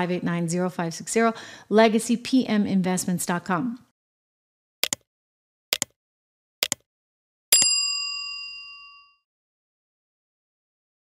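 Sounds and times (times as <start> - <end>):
click sound effect: 4.8 - 5.0, 5.7 - 6.0, 6.6 - 6.9
bright bell ding: 7.6 - 9.3.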